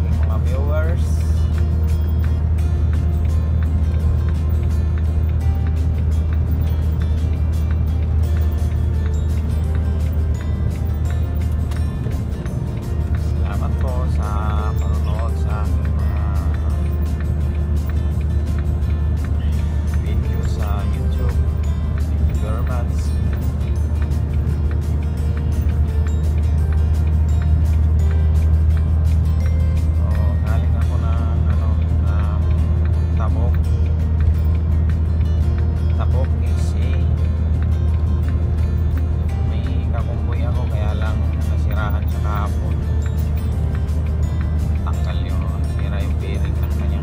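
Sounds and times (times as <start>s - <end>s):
road noise: 0.0s - 47.0s
truck engine drone: 0.0s - 47.0s.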